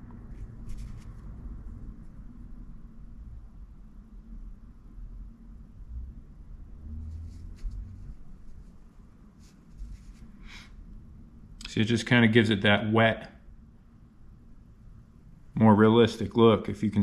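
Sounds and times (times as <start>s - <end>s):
low room hum: 0.0s - 17.0s
fingers rubbing soft plastic: 7.0s - 10.5s.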